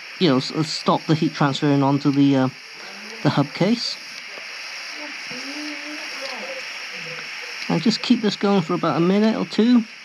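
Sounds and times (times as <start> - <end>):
blowtorch flame hissing: 0.0 - 10.0.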